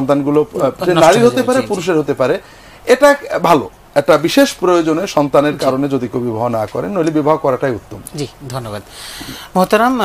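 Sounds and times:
man talking: 0:00.0 - 0:08.9.

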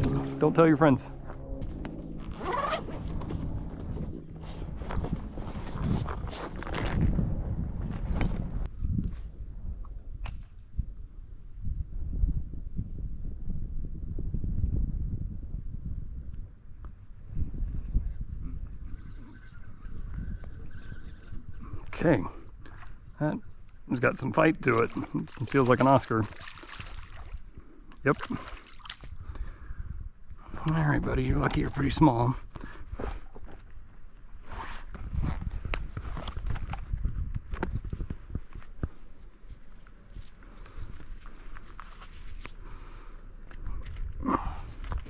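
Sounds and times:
microphone handling rumble: 0:00.0 - 0:10.2, 0:34.5 - 0:39.2
footsteps on dirt: 0:01.1 - 0:08.6
rustling and scuffing of gear: 0:01.2 - 0:08.5, 0:34.4 - 0:42.6
fishing reel whirring: 0:19.1 - 0:21.7.

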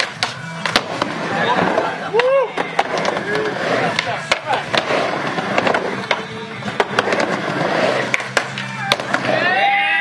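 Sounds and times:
skateboard wheels rolling on ramp: 0:00.0 - 0:10.0.

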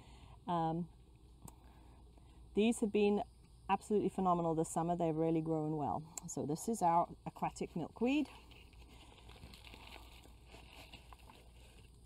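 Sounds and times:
plastic pot crackling: 0:07.6 - 0:12.0.

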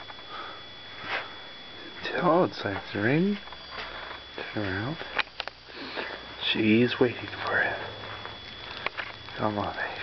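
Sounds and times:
steady background hiss: 0:00.0 - 0:10.0
person sniffing: 0:05.7 - 0:06.2.

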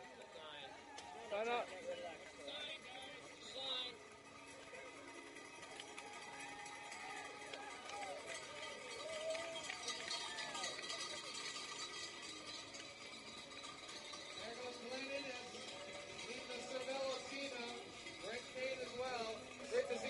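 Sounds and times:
crowd calls and chatter: 0:00.0 - 0:20.0.

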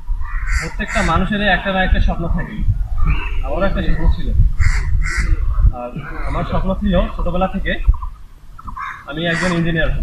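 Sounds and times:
crow cawing: 0:00.2 - 0:01.3, 0:04.6 - 0:06.7, 0:08.6 - 0:09.7.

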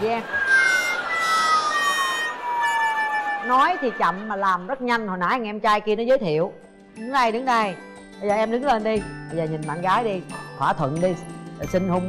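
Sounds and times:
whistle-like tone sliding down: 0:00.2 - 0:04.3.

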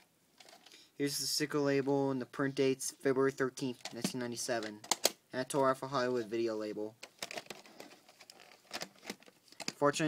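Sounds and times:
plastic case clicking: 0:03.8 - 0:05.2.

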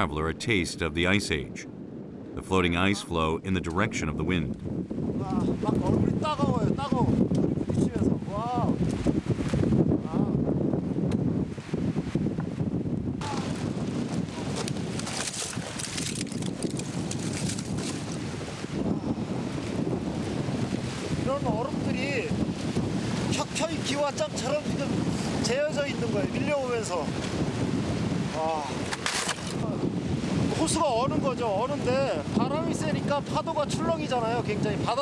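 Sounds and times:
strong wind on microphone: 0:00.0 - 0:35.0.

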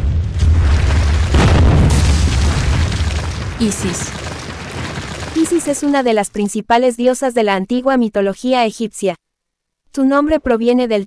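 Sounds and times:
deep rumble: 0:00.0 - 0:06.4
rubble breaking: 0:00.2 - 0:06.6
stone wall shattering: 0:00.4 - 0:06.5.

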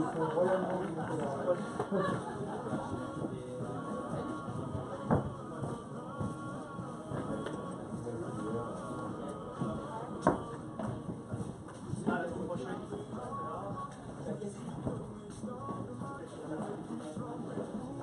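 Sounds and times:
background music: 0:00.0 - 0:18.0
voices: 0:00.0 - 0:18.0.

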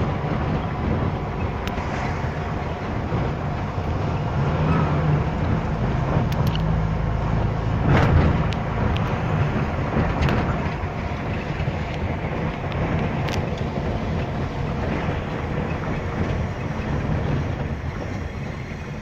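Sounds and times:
car road and engine rumble: 0:00.0 - 0:19.0.

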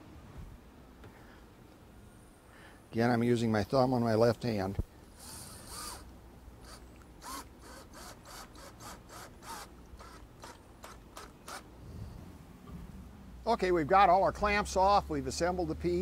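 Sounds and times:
cordless drill whirring: 0:05.2 - 0:11.7.

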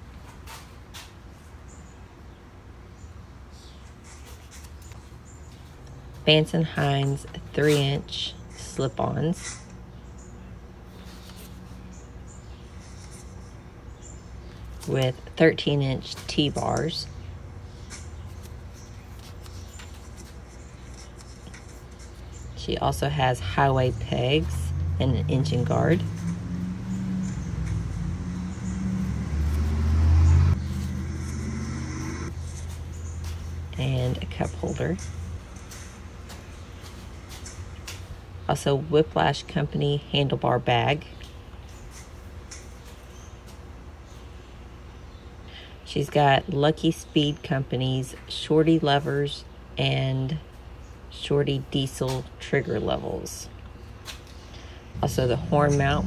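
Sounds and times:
paper notepad rustling: 0:17.9 - 0:22.4
motorcycle engine running: 0:55.0 - 0:56.0.

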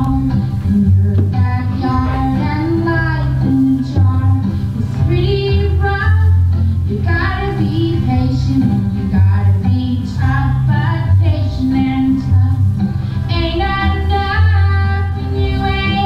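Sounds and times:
heavy bass line: 0:00.0 - 0:16.0.

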